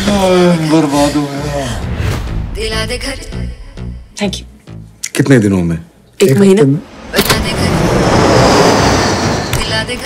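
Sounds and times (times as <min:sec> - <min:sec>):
airliner cabin roar: 0:07.2 - 0:10.0.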